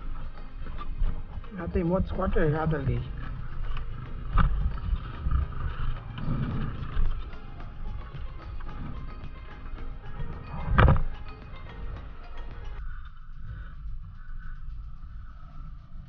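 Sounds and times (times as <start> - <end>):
dirt bike low rumble: 0.0 - 16.0.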